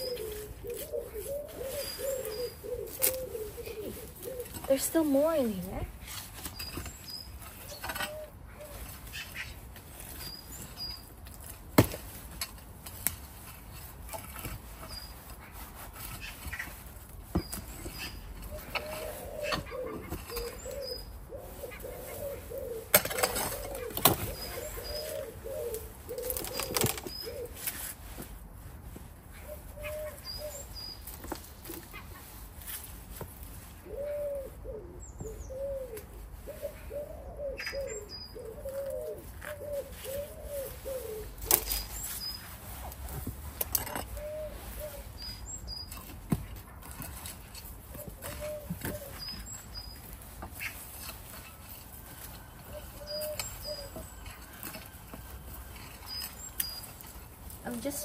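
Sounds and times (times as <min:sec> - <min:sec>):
pigeon cooing: 0:00.0 - 0:05.9, 0:07.6 - 0:09.0, 0:17.9 - 0:27.6, 0:29.4 - 0:30.7, 0:33.8 - 0:41.8, 0:43.8 - 0:45.3, 0:47.7 - 0:49.6, 0:52.7 - 0:55.3
small birds chirping: 0:00.0 - 0:11.8, 0:13.4 - 0:28.3, 0:29.3 - 0:58.0
compost being dug and scraped: 0:00.0 - 0:58.0.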